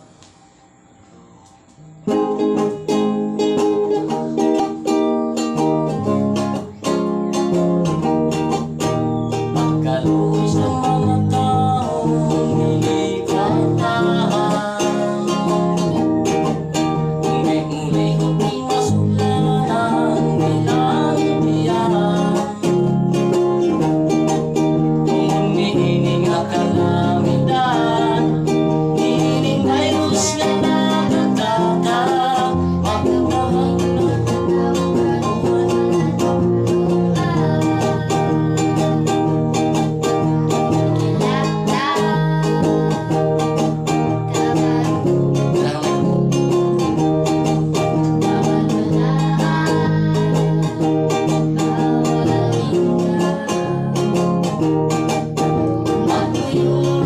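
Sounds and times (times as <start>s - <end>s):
acoustic guitar strumming: 0.0s - 57.0s
girl singing: 2.1s - 57.0s
man singing: 9.5s - 54.6s, 55.7s - 57.0s.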